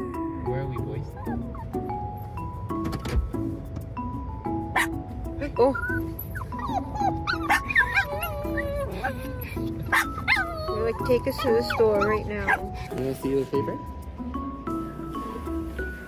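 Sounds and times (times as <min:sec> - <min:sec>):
small dogs whining and yipping: 0:00.0 - 0:02.6, 0:04.6 - 0:13.0
light music of repeating notes: 0:00.0 - 0:16.0.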